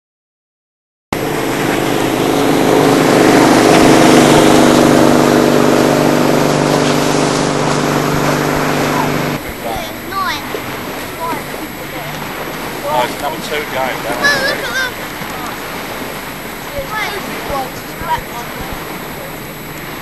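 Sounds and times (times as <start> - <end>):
propane burner roaring: 1.2 - 20.0.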